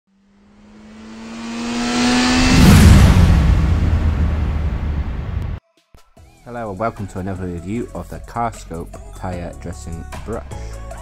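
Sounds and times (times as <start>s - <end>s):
car speeding past: 0.1s - 5.6s.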